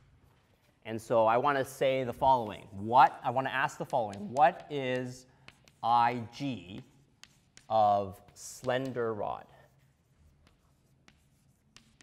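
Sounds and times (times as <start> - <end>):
chalk scratching on chalkboard: 0.0 - 0.8, 1.4 - 12.0.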